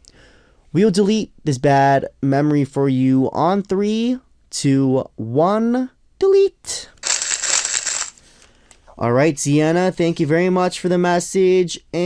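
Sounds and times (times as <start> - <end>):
crackly rattling sound effect: 7.0 - 8.2.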